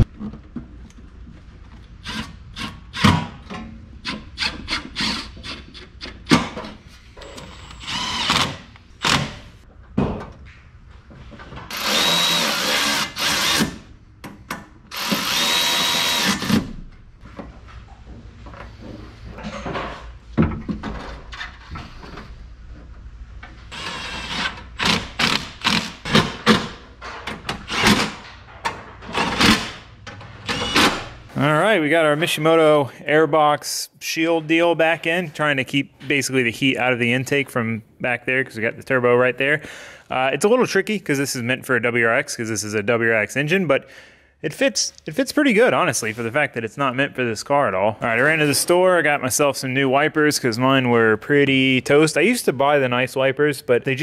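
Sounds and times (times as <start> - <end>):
cordless drill motor whining: 11.7 - 13.6.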